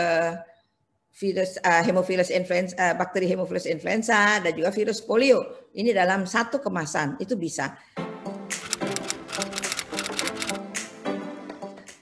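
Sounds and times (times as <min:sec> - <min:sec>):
background music: 0:07.8 - 0:12.0
typewriter keystroke clicks: 0:08.6 - 0:10.6.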